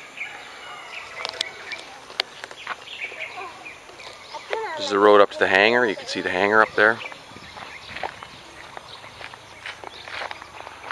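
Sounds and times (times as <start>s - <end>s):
birds calling: 0.0s - 10.9s.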